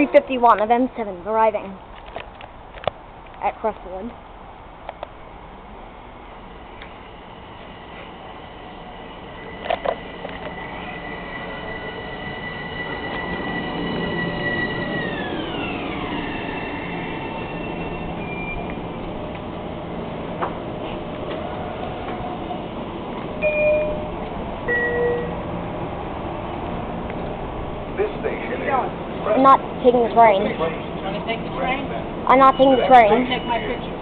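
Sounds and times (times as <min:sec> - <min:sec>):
train rumble: 0:00.0 - 0:34.0
electric traction whine: 0:05.0 - 0:34.0
short chime tones: 0:23.4 - 0:25.4.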